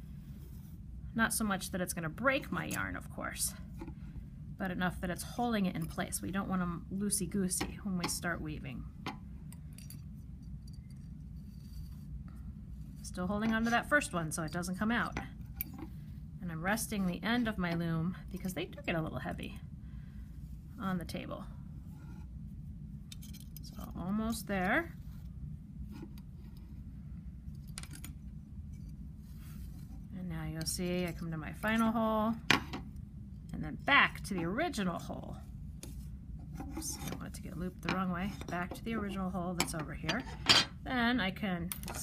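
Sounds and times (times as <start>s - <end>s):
faint room hum: 0.0s - 42.0s
yarn rubbing through clay loom: 33.5s - 40.4s.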